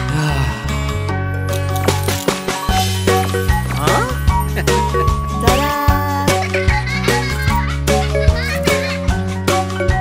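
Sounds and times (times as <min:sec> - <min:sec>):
children's song backing music: 0:03.8 - 0:10.0
child's voice: 0:05.4 - 0:07.0, 0:08.2 - 0:09.0.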